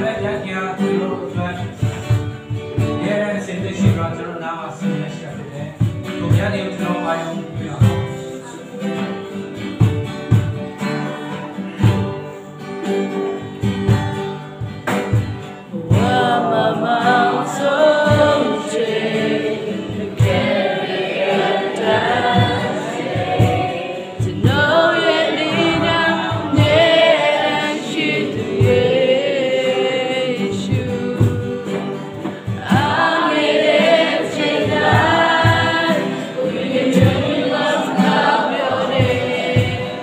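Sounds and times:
acoustic guitars: 0:00.0 - 0:40.0
cajon beat: 0:00.0 - 0:40.0
people singing: 0:00.0 - 0:40.0.

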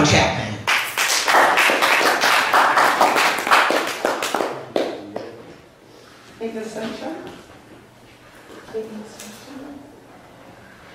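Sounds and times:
small audience clapping: 0:00.7 - 0:05.6.

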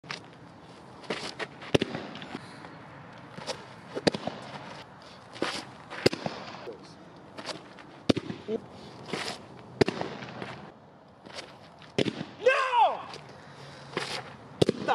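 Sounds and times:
pitcher's stride scuffing dirt: 0:00.0 - 0:06.2, 0:07.3 - 0:08.1, 0:08.8 - 0:12.0, 0:13.0 - 0:14.4
baseball cracking against target: 0:01.1 - 0:02.4, 0:03.3 - 0:04.6, 0:05.4 - 0:06.7, 0:07.4 - 0:13.3, 0:14.0 - 0:14.9.

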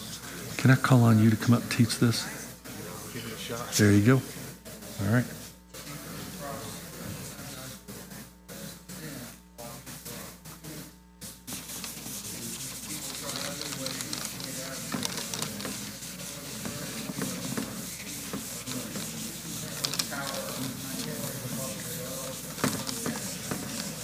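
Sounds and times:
murmur of voices: 0:00.0 - 0:11.0, 0:11.6 - 0:24.0
marker squeaking on whiteboard: 0:11.5 - 0:24.0.

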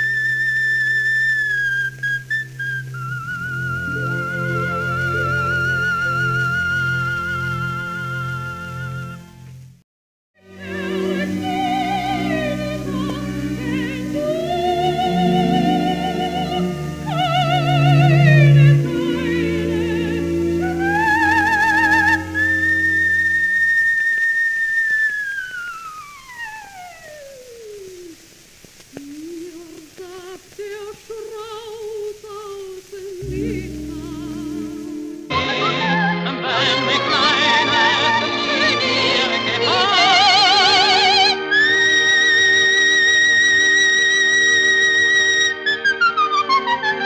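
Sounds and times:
soprano singing high notes: 0:00.0 - 0:09.3, 0:10.4 - 0:28.4, 0:29.0 - 0:47.0
soft accompaniment: 0:01.4 - 0:09.6, 0:10.4 - 0:23.4, 0:29.0 - 0:47.0.

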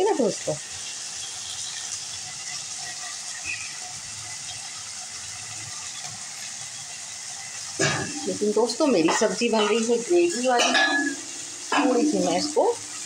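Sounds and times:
vegetables sizzling in oil: 0:00.0 - 0:13.0.

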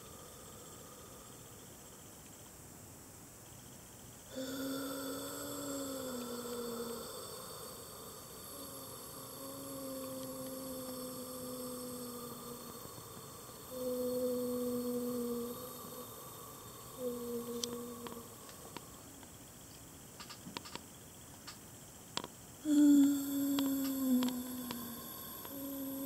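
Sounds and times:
low humming tone: 0:00.0 - 0:02.6, 0:03.4 - 0:20.4, 0:21.1 - 0:26.0.

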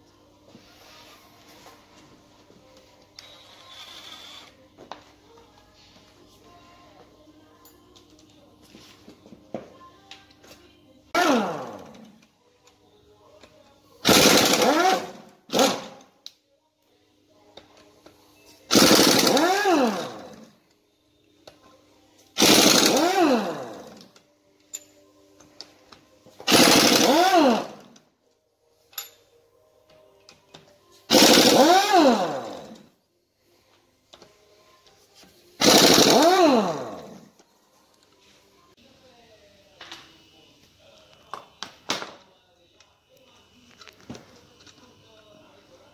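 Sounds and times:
pneumatic impact wrench: 0:14.0 - 0:16.0, 0:18.7 - 0:20.5, 0:22.4 - 0:24.0, 0:26.4 - 0:27.9, 0:31.1 - 0:32.8, 0:35.6 - 0:37.2.

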